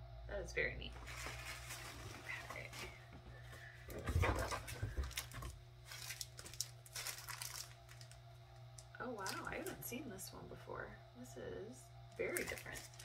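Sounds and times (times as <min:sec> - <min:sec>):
packaging and paper crinkling: 0:01.0 - 0:02.9, 0:03.9 - 0:08.2, 0:12.3 - 0:13.0.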